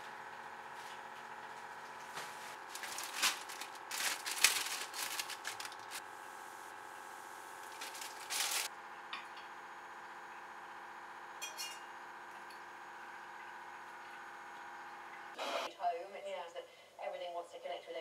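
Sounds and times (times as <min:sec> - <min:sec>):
plastic packet crinkling: 0:02.6 - 0:06.0, 0:07.6 - 0:08.7.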